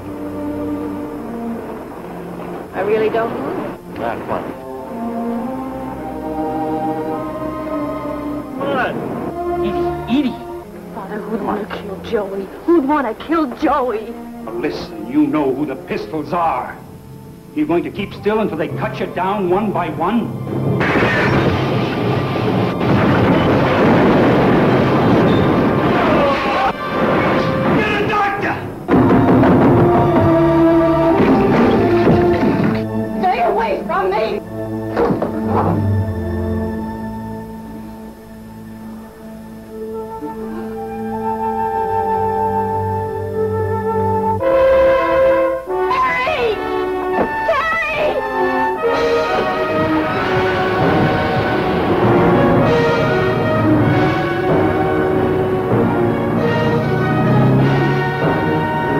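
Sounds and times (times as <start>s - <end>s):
dramatic orchestral music with brass: 0.0s - 58.9s.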